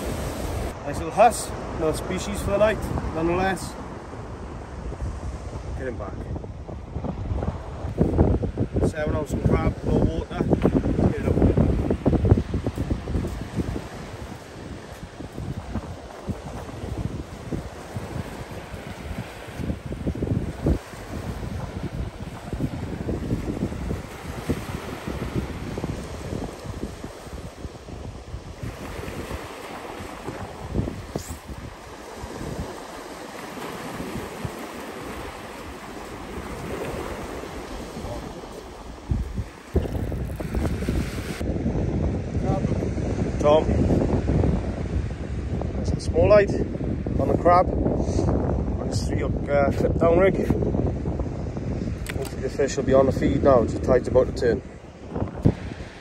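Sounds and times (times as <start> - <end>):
waves breaking on shore: 0.0 - 56.0
wind buffeting microphone: 0.0 - 56.0.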